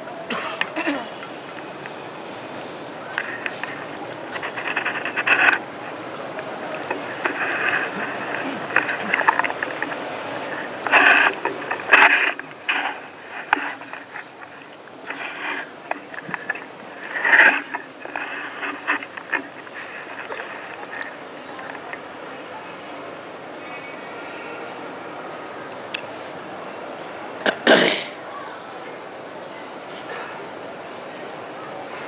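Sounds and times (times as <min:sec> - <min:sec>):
steady hiss: 0:00.0 - 0:32.0
microphone handling clicks and rustling: 0:03.1 - 0:22.1.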